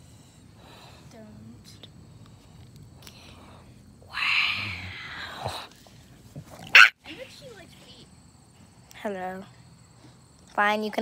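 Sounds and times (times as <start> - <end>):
dog raspy vocalizing: 6.3 - 7.0
dog barking: 6.7 - 7.0.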